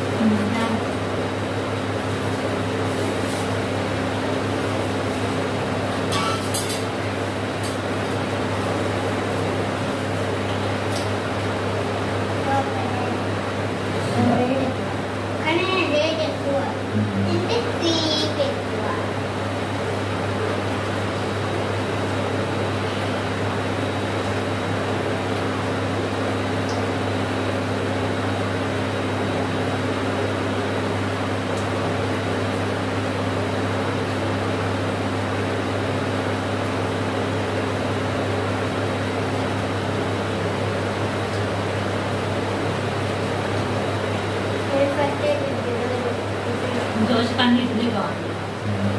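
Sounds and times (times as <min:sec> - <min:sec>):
mechanical hum: 0:00.0 - 0:48.9.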